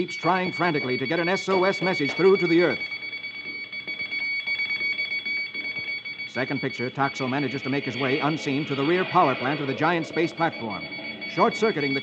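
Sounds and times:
high-pitched steady whine: 0.0 - 12.0.

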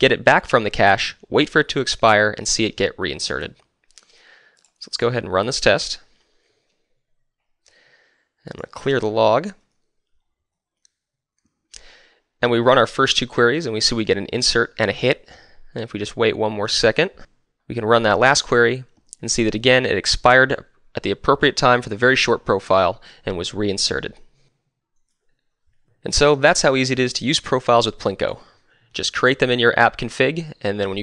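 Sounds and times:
person speaking: 0.0 - 6.2, 8.4 - 10.1, 11.7 - 25.3, 25.9 - 31.0.

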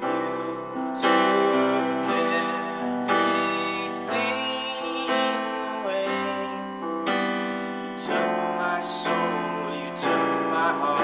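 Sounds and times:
electronic keyboard piano chords: 0.0 - 11.0.

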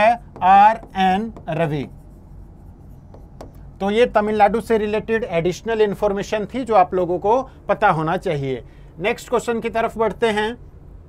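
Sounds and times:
stylus scratching on touchscreen: 0.0 - 3.6
pen tip tapping screen: 3.1 - 3.7.

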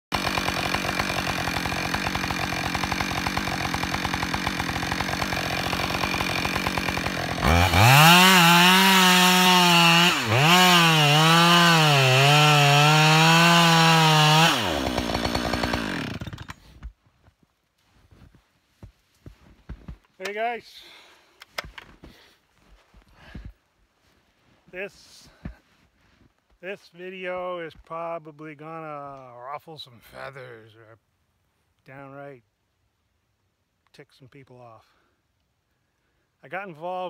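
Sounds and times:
chainsaw cutting tree trunk: 0.1 - 16.9.

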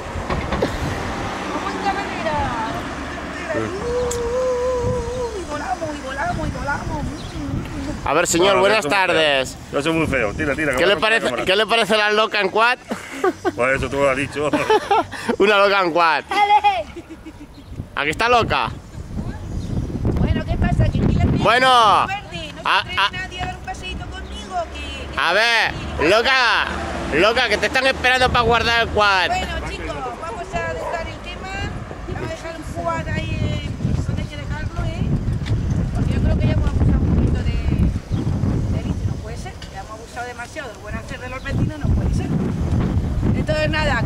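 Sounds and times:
motor vehicle rumble: 0.0 - 44.0
voices: 1.0 - 42.6, 43.2 - 44.0.

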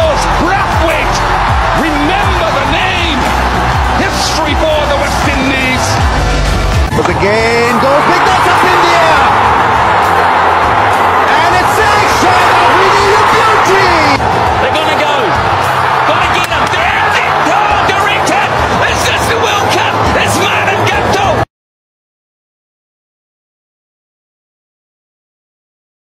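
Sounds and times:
excited commentator talking: 0.0 - 6.1, 6.9 - 9.5, 11.1 - 21.5
background music: 0.0 - 21.5
stadium crowd roaring: 0.0 - 21.5.

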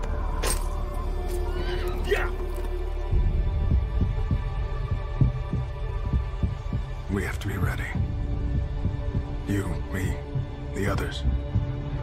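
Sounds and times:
low steady drone: 0.0 - 12.0
deep pulsing beat: 2.9 - 12.0.

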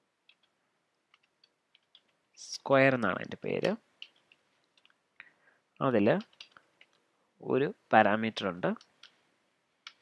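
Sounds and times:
person speaking: 2.4 - 9.1.

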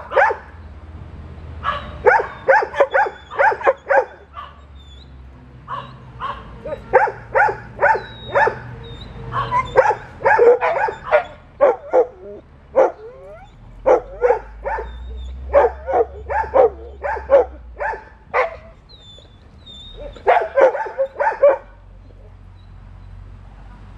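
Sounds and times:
dog barking excitedly: 0.0 - 0.6, 1.6 - 4.8, 5.7 - 18.8, 20.0 - 22.1
dog whining: 2.1 - 22.4.

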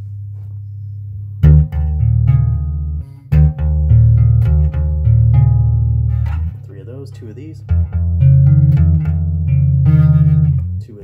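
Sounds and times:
bass guitar arpeggios: 0.0 - 11.0.

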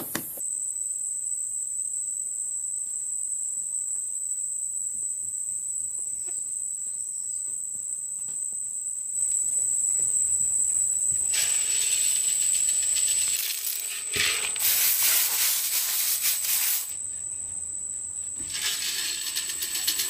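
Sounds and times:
insects trilling: 0.0 - 20.0
even hiss: 11.2 - 17.2, 18.3 - 20.0.

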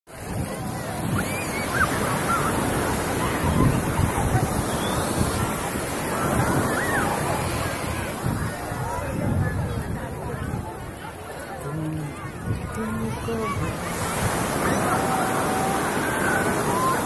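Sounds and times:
sea surf breaking on beach: 0.1 - 17.0
wind buffeting microphone: 0.2 - 17.0.

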